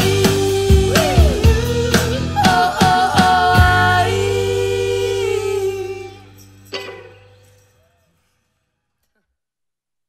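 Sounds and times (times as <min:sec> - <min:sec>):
live rock song with vocals: 0:00.0 - 0:06.9
guitar strum: 0:05.8 - 0:08.0.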